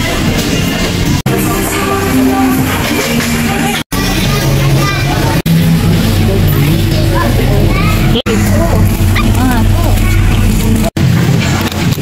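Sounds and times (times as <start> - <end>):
music playing: 0.0 - 11.4
people talking: 2.3 - 11.0.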